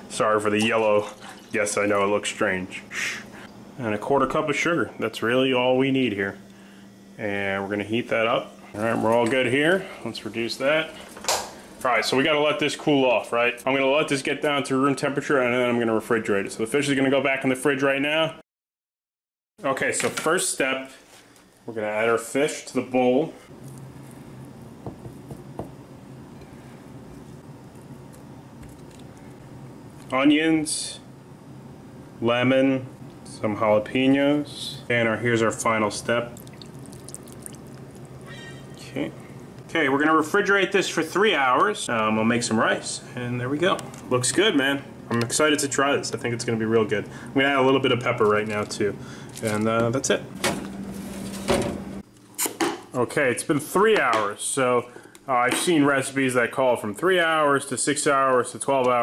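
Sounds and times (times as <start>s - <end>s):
steady low hum: 0.0s - 18.4s, 19.6s - 52.4s.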